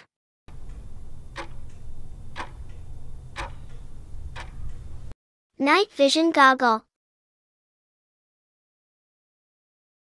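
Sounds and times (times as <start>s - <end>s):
clock ticking: 0.0s - 5.2s
steady low hum: 0.5s - 5.2s.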